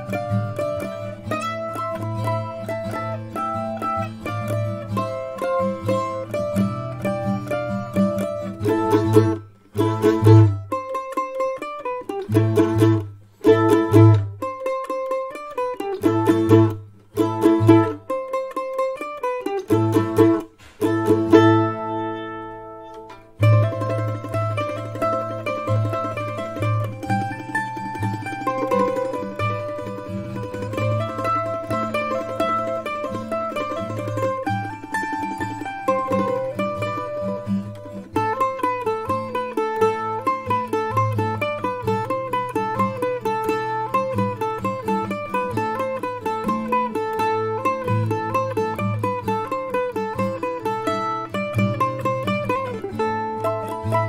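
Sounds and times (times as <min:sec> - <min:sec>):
mandolin playing heavy metal: 0:00.0 - 0:54.0.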